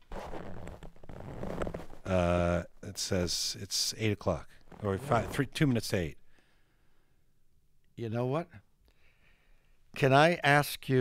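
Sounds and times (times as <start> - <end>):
hands rustling against microphone: 0.0 - 2.1.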